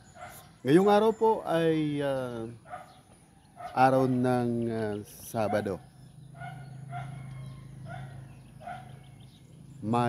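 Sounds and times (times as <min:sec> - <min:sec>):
short bird calls: 0:02.4 - 0:10.0.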